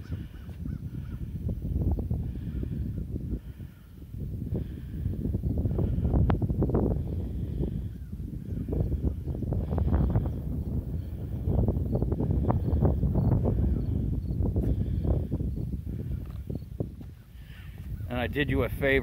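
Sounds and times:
distant waterfowl calls: 0.0s - 1.3s, 17.2s - 18.1s
wind on microphone: 0.0s - 19.0s.

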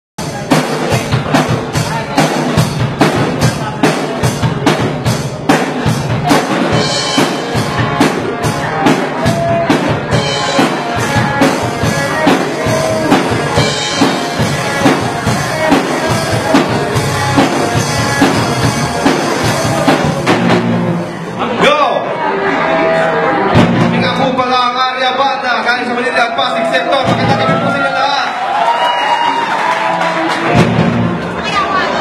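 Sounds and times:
rock band playing: 0.2s - 32.0s.

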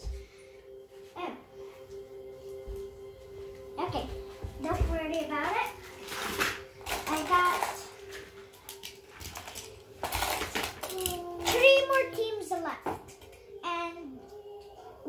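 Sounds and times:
toy cars clattering in plastic box: 8.7s - 11.9s.

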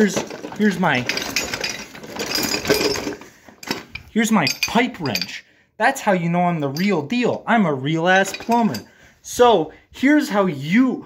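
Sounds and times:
metal tools rattling in a bag: 0.0s - 5.4s, 8.2s - 8.9s.

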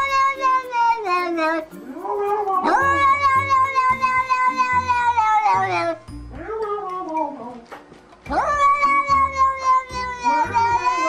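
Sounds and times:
cat yowling: 0.0s - 7.6s, 8.3s - 11.0s
background music with low beat: 0.0s - 11.0s.

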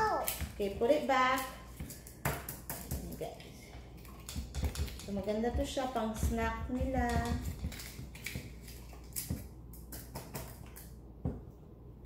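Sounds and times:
low room hum: 0.0s - 12.0s
whisk knocking in metal bowl: 4.0s - 8.7s.

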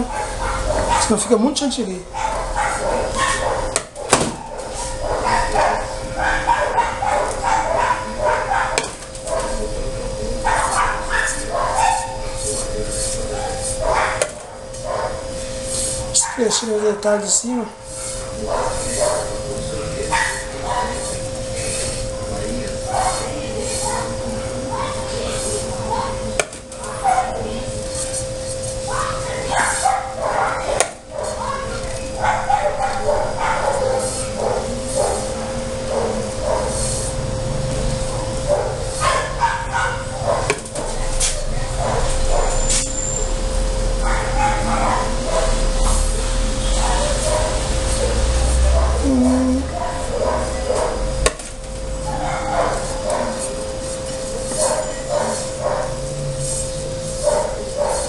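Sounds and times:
dog barking: 0.0s - 1.3s, 2.1s - 9.7s, 10.4s - 12.5s, 13.3s - 15.2s, 16.1s - 17.0s, 18.4s - 21.2s, 22.8s - 27.6s, 28.2s - 36.9s, 38.1s - 42.6s, 44.0s - 46.0s, 46.8s - 51.2s, 52.0s - 53.6s, 54.4s - 56.0s, 57.1s - 58.0s
steady hum: 0.0s - 58.0s.

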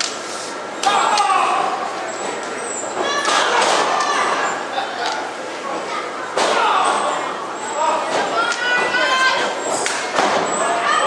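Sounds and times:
people calling out: 0.8s - 5.4s, 6.3s - 11.0s.

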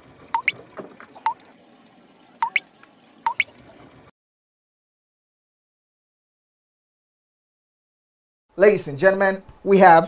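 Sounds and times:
water droplet plinks: 0.4s - 0.6s, 1.2s - 1.5s, 2.4s - 2.7s, 3.3s - 3.6s.

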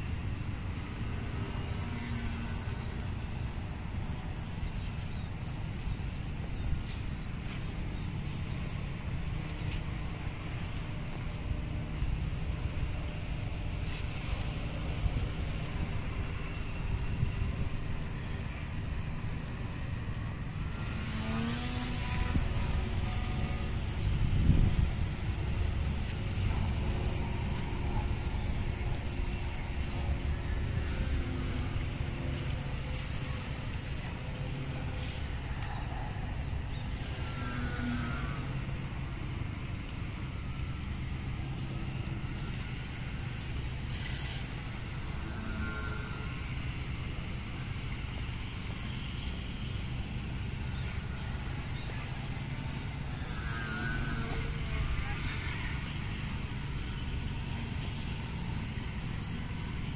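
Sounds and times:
model airplane motor whining: 0.0s - 59.9s
wind rumble on microphone: 21.3s - 31.1s.

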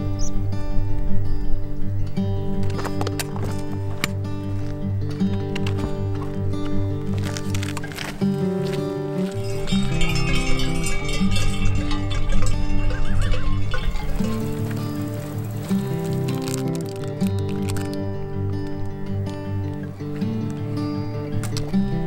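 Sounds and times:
music with sustained chords: 0.0s - 22.0s.

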